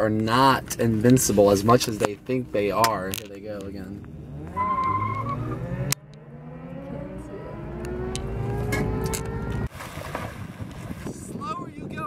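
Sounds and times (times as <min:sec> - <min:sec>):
car engine accelerating: 0:03.5 - 0:09.7.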